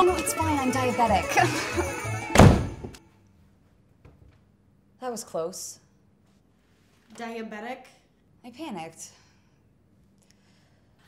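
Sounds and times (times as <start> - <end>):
door thunking shut: 2.3 - 3.0.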